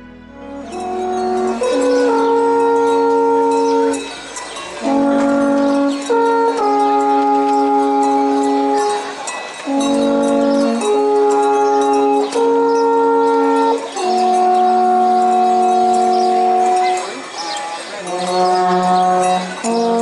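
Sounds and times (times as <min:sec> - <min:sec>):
alphorns playing slow tune: 0:00.0 - 0:17.2.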